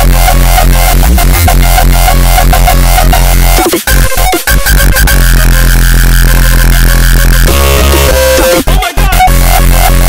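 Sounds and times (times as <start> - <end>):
distorted bass note: 0.0 - 10.0
high synth tone: 0.0 - 10.0.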